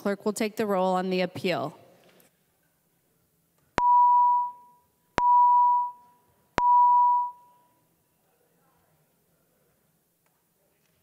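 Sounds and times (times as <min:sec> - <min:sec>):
electronic beeps: 0:03.8 - 0:07.7.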